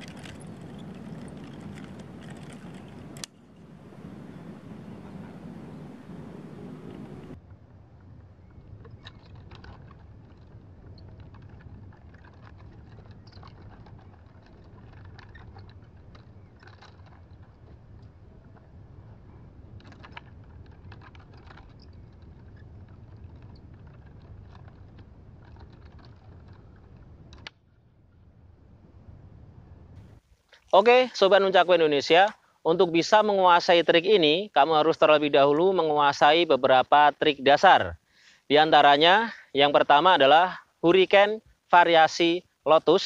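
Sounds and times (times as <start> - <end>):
wind rumble on microphone: 0.0 - 30.3.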